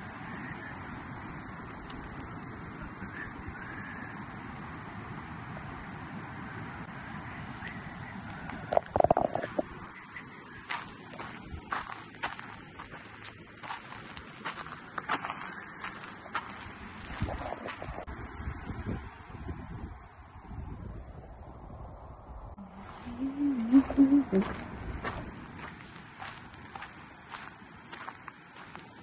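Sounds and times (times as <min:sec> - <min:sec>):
footsteps on gravelly ground: 0:07.5 - 0:18.1, 0:22.6 - 0:29.0
person humming: 0:22.6 - 0:24.6.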